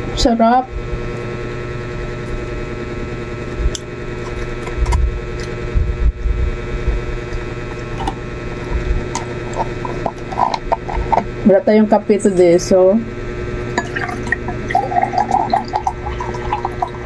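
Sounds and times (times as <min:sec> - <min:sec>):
steady mechanical hum: 0:00.0 - 0:17.0
soft low thumps: 0:05.0 - 0:07.1.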